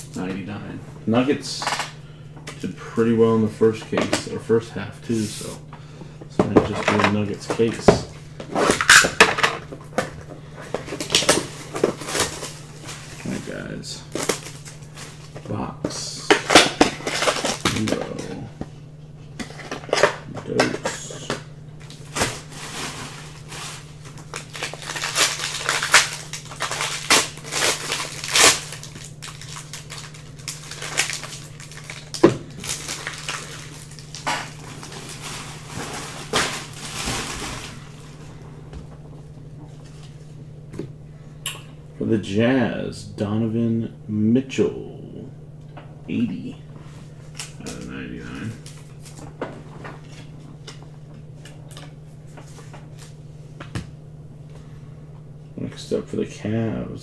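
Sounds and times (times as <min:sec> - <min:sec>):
steady low hum: 0:00.0 - 0:57.0
foil wrapper crinkling: 0:10.8 - 0:15.4, 0:16.4 - 0:18.3, 0:21.8 - 0:38.2
foil pack tearing: 0:10.9 - 0:13.4, 0:14.1 - 0:15.4, 0:16.4 - 0:18.3, 0:21.8 - 0:38.1.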